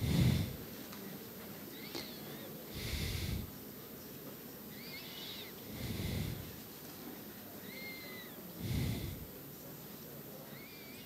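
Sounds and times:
breaths puffing on a microphone: 0.0s - 0.6s, 2.7s - 3.5s, 5.7s - 6.6s, 8.6s - 9.3s
high squeaky chirps: 4.7s - 5.6s.

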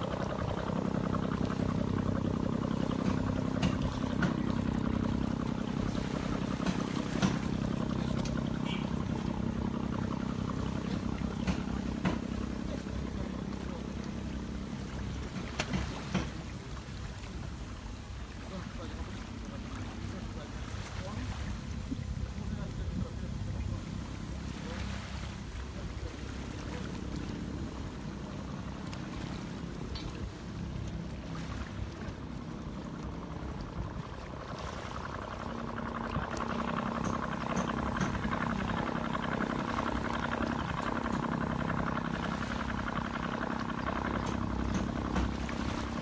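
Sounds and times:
boat engine humming: 0.0s - 46.0s
water lapping at shoreline: 0.0s - 46.0s.

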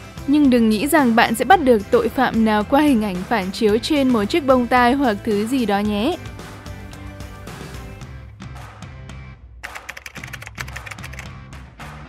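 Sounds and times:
background music: 0.0s - 12.0s
rapid keyboard typing clicks: 9.6s - 11.3s.

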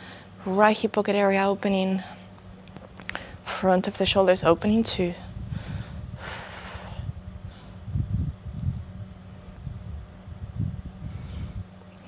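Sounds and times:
wind rumbling on microphone: 3.3s - 11.8s.

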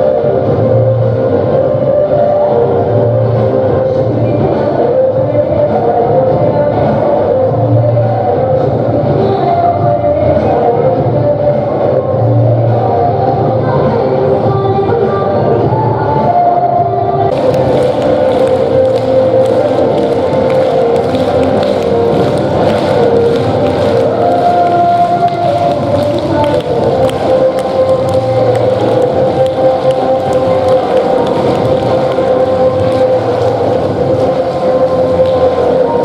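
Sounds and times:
dance music over sound system: 0.0s - 36.0s
audience clapping along: 17.3s - 36.0s.

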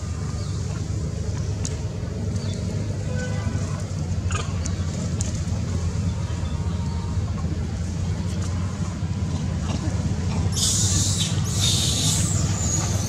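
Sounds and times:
low outdoor background rumble: 0.0s - 13.0s.

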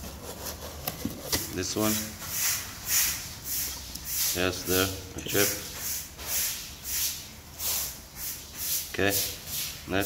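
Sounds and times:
tiles scraping against cardboard: 0.0s - 8.9s.

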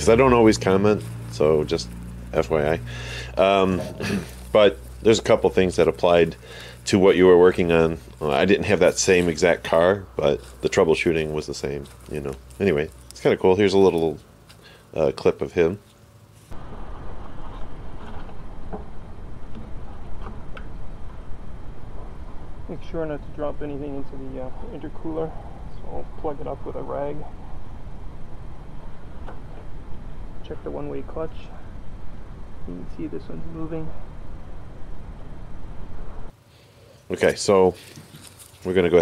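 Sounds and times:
steady low rumble: 0.0s - 14.4s, 16.5s - 36.4s
hands handling engine parts: 11.5s - 16.6s, 36.9s - 39.0s.

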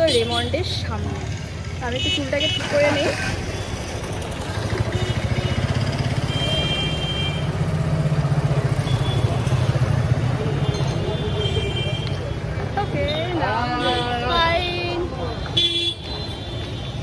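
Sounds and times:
busy street traffic: 0.0s - 17.0s
vehicle engine rumbling: 0.0s - 17.0s.

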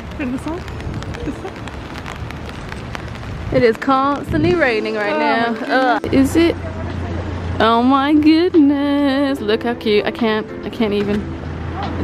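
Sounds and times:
rain tapping on umbrella: 0.0s - 7.0s.

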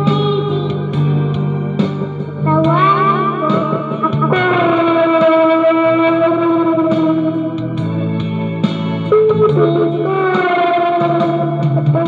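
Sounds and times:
backing track with bass line: 0.0s - 12.0s
electric guitar with effects: 0.0s - 12.0s.

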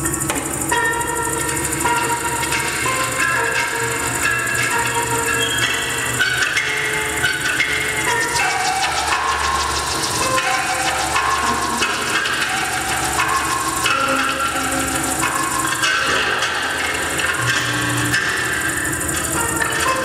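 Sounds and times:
mechanisms clattering and tapping: 0.0s - 20.0s.

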